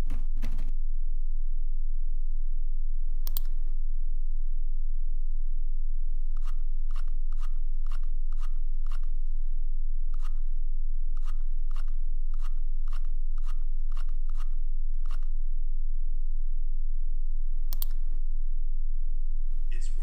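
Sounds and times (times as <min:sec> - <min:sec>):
steady low hum: 0:00.0 - 0:20.0
mouse scroll wheel clicking: 0:06.4 - 0:09.1, 0:10.2 - 0:10.4, 0:11.2 - 0:15.3.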